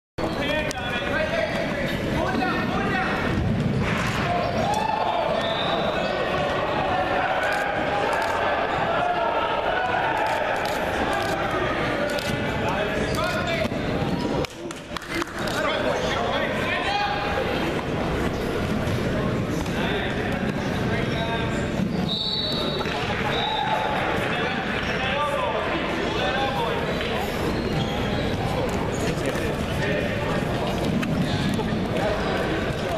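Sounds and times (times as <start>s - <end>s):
people calling and shouting: 0.2s - 32.9s.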